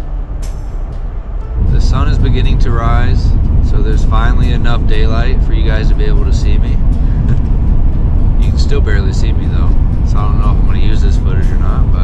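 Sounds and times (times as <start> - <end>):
car interior rumble: 0.0 - 12.0
soft music: 0.0 - 12.0.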